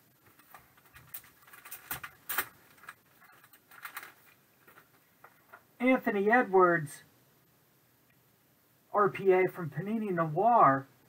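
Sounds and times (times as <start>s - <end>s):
plastic sleeve rustling: 0.2s - 5.7s.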